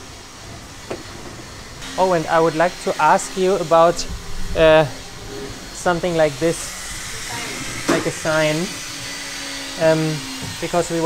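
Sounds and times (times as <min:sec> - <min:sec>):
workshop background noise: 0:00.0 - 0:11.0.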